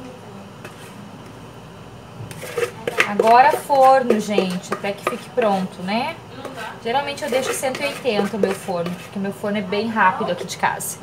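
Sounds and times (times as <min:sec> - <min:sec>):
spatula scraping bowl: 0:00.6 - 0:01.0, 0:02.3 - 0:11.0.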